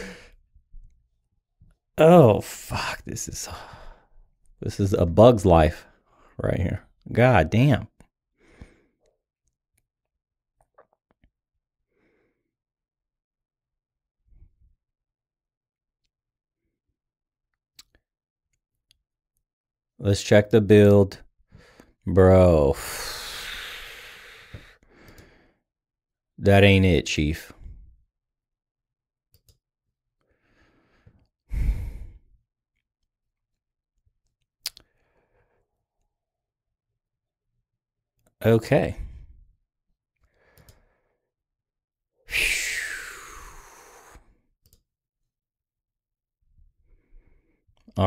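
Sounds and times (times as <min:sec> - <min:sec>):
faint breathing: 0:00.0 - 0:00.4, 0:22.8 - 0:25.6, 0:30.3 - 0:32.4, 0:42.3 - 0:44.4.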